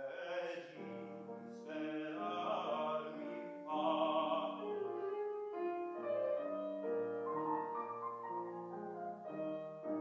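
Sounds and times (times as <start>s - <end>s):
grand piano playing: 0.0s - 10.0s.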